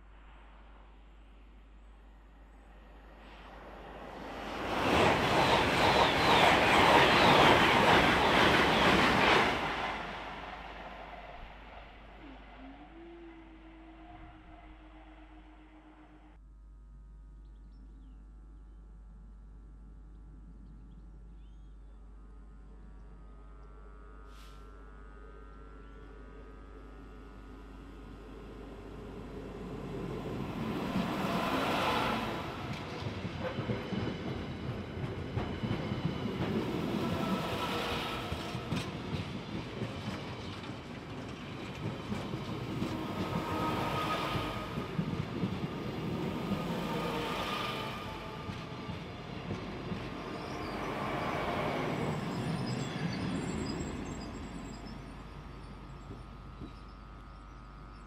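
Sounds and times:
train passing: 0.0 - 16.4, 27.3 - 57.2
wheel-and-rail noise: 3.3 - 13.4, 28.4 - 56.8.

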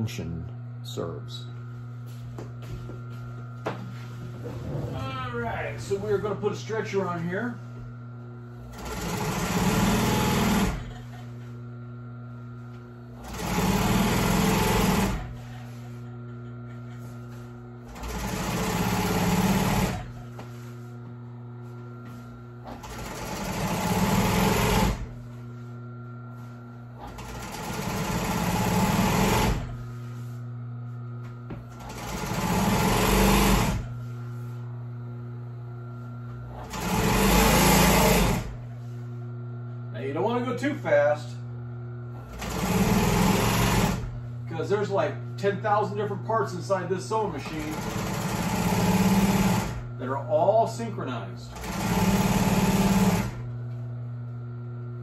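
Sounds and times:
steady motor hum: 0.0 - 55.0
sewing machine stitching: 8.7 - 11.0, 13.2 - 15.8, 17.8 - 20.2, 22.6 - 25.1, 27.0 - 29.8, 31.7 - 33.9, 36.5 - 38.6, 42.2 - 44.2, 47.4 - 49.9, 51.5 - 53.5.

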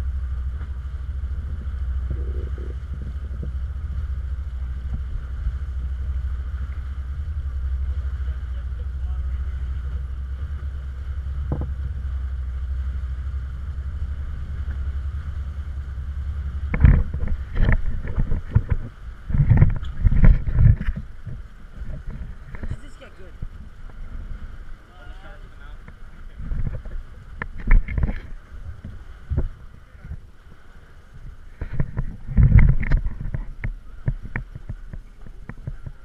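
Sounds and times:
boat low rumble: 0.0 - 36.0.

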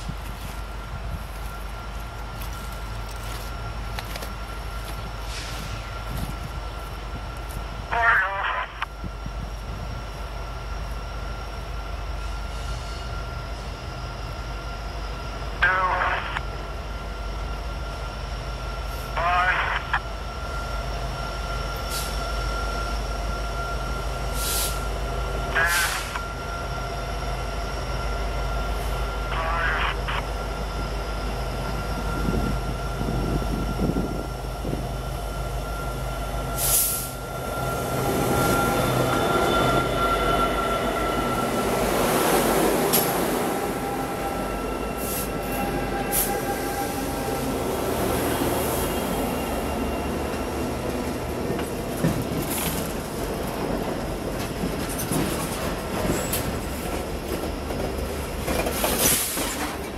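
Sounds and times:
diesel locomotives droning: 0.0 - 59.9
train wheels on rails: 0.0 - 59.9.

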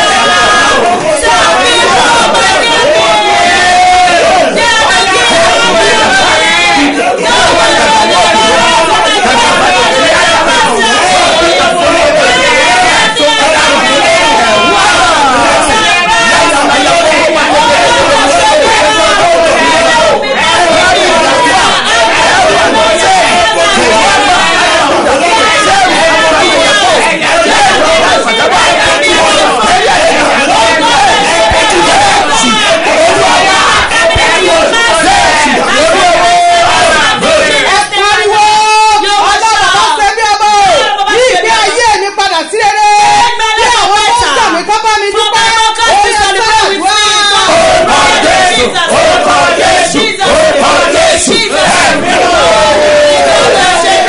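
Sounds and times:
woman praying aloud: 0.0 - 49.0
man praying aloud: 0.0 - 54.0.

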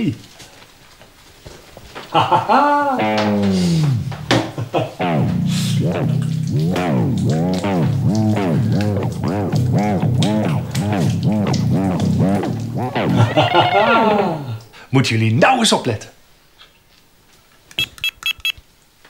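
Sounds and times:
steady bass line: 3.0 - 4.4, 5.0 - 13.3.

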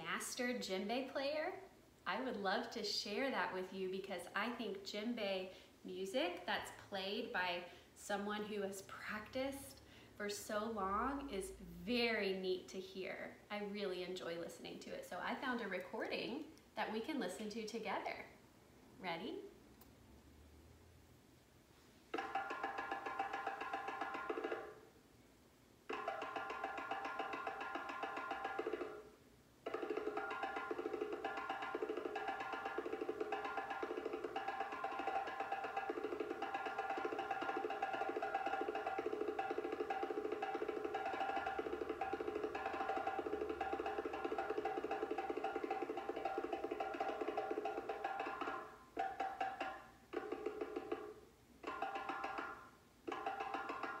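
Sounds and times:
djembe drumming: 22.1 - 24.8, 25.9 - 54.0.

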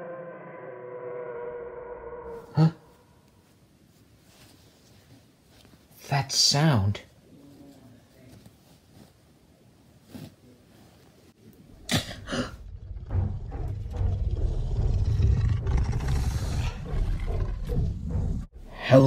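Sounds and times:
low deep roar: 0.0 - 3.2, 12.2 - 18.8.

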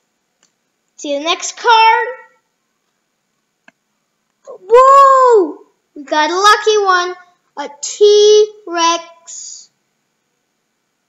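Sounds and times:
child's voice: 1.0 - 2.4, 4.5 - 9.7.

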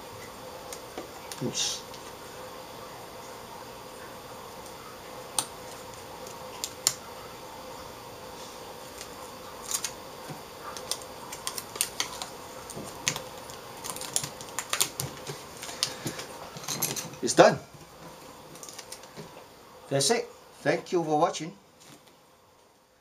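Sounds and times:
foil tape clicks and crinkles: 5.4 - 7.0, 8.9 - 10.0, 10.7 - 16.3, 18.5 - 19.2.

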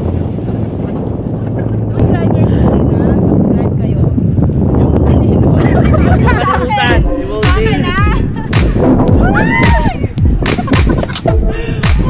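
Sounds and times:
wind buffeting microphone: 0.0 - 12.0
high voices laughing and calling: 5.2 - 7.0.

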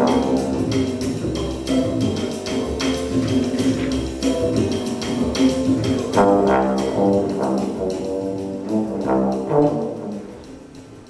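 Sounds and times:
trombones playing held jazz notes: 0.0 - 11.0.

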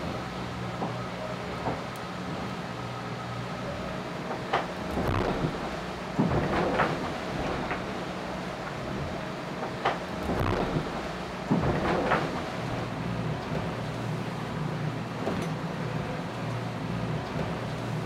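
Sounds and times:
low hum from hull: 0.0 - 18.0
water surging against hull: 0.0 - 18.0.

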